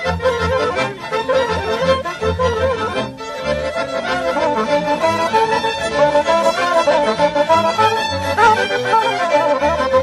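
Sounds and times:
folk dance music: 0:00.0 - 0:10.0.

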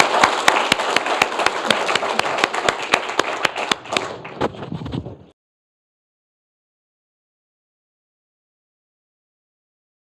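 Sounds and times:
audience applause: 0:00.0 - 0:04.4.

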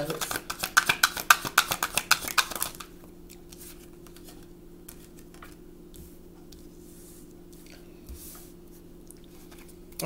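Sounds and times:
cards being shuffled: 0:00.0 - 0:02.9.

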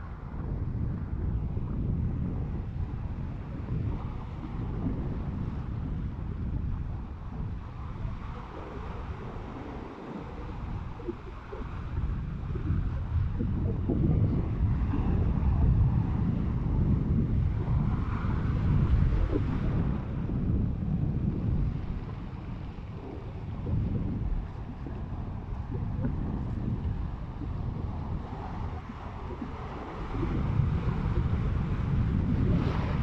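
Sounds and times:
wind rumbling on microphone: 0:00.0 - 0:33.0
waves breaking over rocks: 0:02.9 - 0:33.0.

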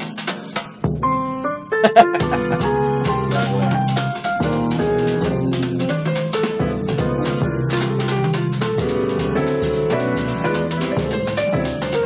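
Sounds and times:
person laughing: 0:01.8 - 0:02.7
bass and drums: 0:02.0 - 0:12.0.

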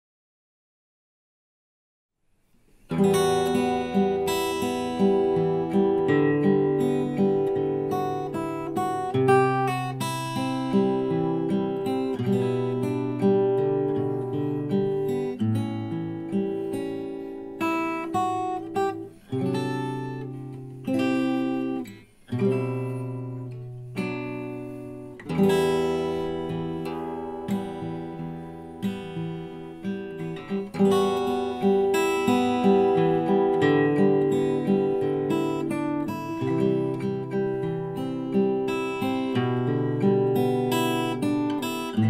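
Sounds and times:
fingerstyle acoustic guitar: 0:02.4 - 0:42.0.

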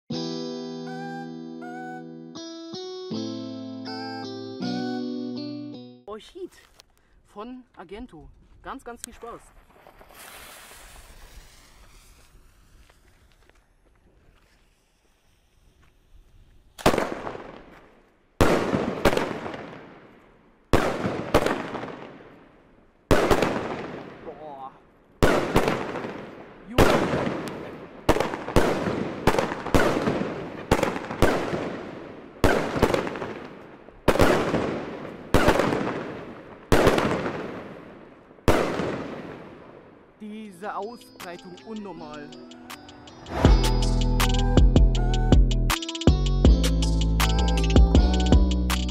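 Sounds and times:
firework bangs: 0:09.6 - 0:13.6, 0:14.5 - 0:22.4, 0:23.1 - 0:24.3, 0:25.2 - 0:40.0
fuse burning: 0:10.0 - 0:16.8.

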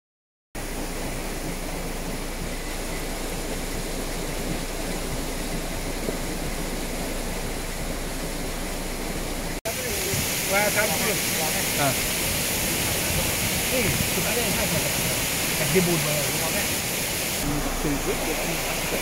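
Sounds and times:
floodwater rushing: 0:00.6 - 0:19.0.

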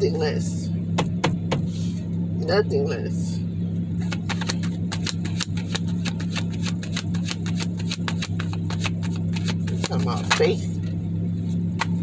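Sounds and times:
car cabin hum: 0:00.0 - 0:12.0.

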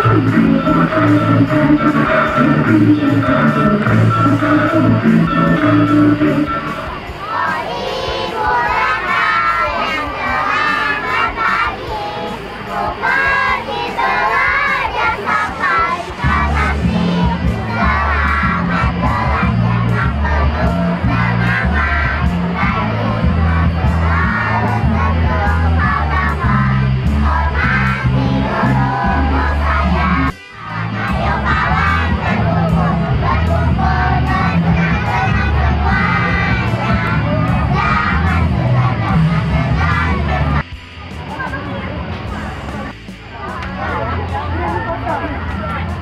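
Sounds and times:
children singing: 0:00.0 - 0:40.6
backing music track: 0:00.0 - 0:46.0.

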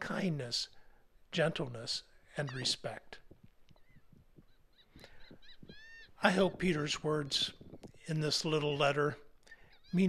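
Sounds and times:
laughing gull calls: 0:02.4 - 0:03.0, 0:03.8 - 0:10.0.

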